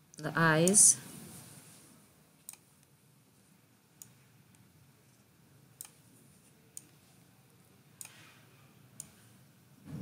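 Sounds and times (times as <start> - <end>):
computer mouse click: 2.4 - 2.9, 5.8 - 6.0, 6.7 - 7.0, 8.0 - 8.3, 9.0 - 9.2.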